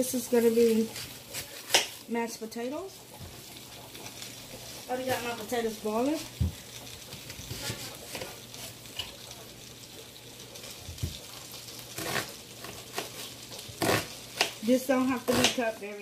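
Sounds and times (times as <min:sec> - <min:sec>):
food frying sizzle: 0:00.0 - 0:16.0
knocks and taps on countertop: 0:06.3 - 0:07.7, 0:10.9 - 0:11.2
knife cutting onion: 0:11.9 - 0:15.8.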